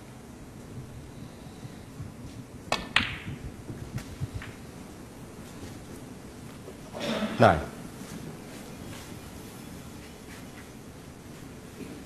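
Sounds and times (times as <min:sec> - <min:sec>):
cue tip striking ball: 0:02.7 - 0:03.5
balls clicking together: 0:02.7 - 0:04.6.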